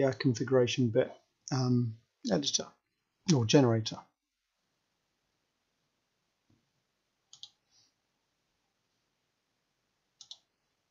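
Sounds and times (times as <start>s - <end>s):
computer mouse clicks: 7.3s - 7.6s, 10.2s - 10.5s.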